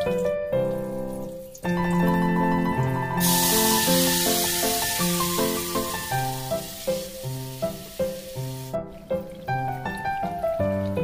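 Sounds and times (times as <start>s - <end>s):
background music: 0.0s - 11.0s
batter sizzling in hot oil: 3.0s - 10.0s.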